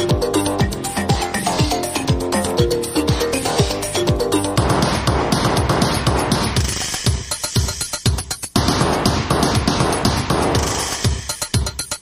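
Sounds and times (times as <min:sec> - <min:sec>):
drum machine roll: 0:00.0 - 0:12.0
kick drum beat: 0:00.0 - 0:12.0.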